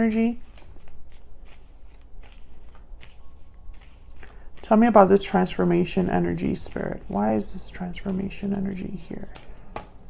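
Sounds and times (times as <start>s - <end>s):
cards being shuffled: 0.0s - 10.0s.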